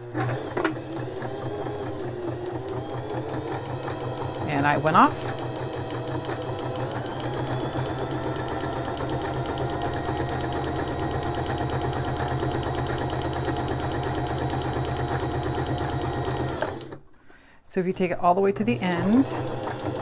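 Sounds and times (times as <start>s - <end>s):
sewing machine running: 0.0s - 17.0s, 18.6s - 20.0s.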